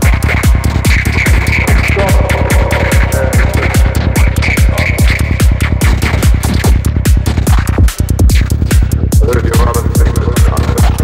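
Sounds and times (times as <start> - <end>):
rolling bassline: 0.0 - 11.0
steady kick drum: 0.0 - 11.0.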